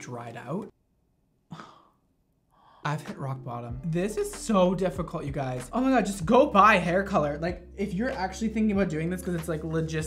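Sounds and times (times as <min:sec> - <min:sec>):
breathy exhale: 0:01.5 - 0:02.9
faint breath in: 0:01.5 - 0:02.9.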